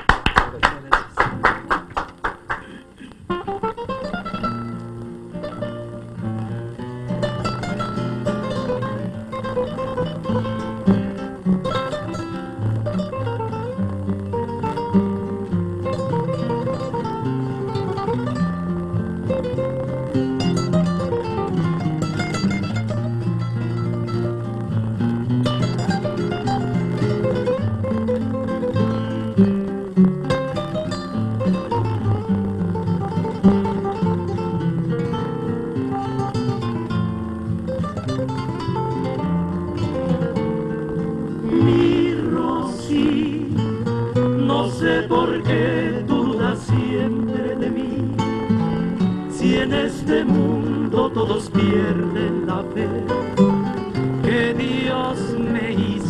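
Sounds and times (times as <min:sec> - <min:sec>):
accompanying guitars: 0:00.0 - 0:56.0
acoustic guitar melody: 0:00.0 - 0:56.0.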